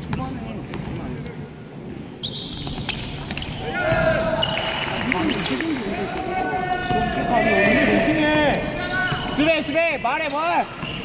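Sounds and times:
sneakers squeaking on court: 1.8 - 5.8, 9.0 - 11.0
players shouting: 3.6 - 10.8.

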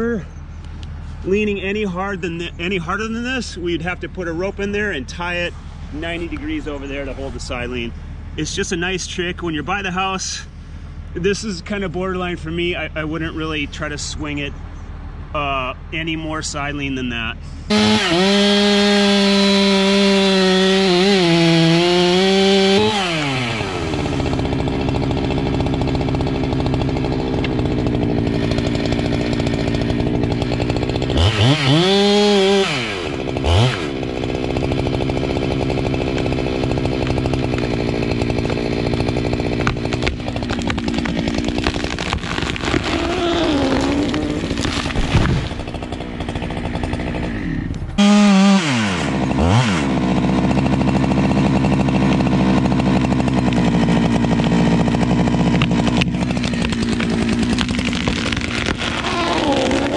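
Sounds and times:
chainsaw cutting wood: 17.7 - 59.9.

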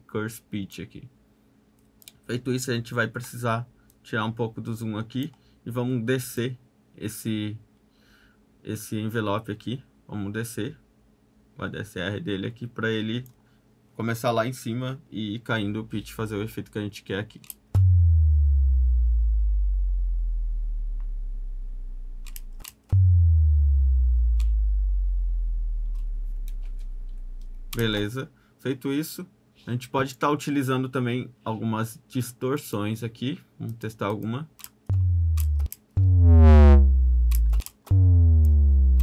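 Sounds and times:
deep sub-bass boom: 17.8 - 28.0, 34.9 - 39.0.

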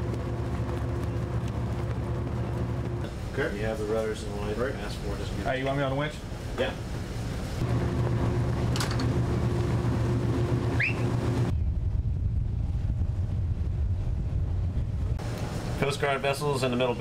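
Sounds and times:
dull low rumble: 0.0 - 5.4, 7.4 - 16.2
low engine hum: 0.0 - 5.6, 6.2 - 17.0
rising chirp: 10.7 - 11.8.

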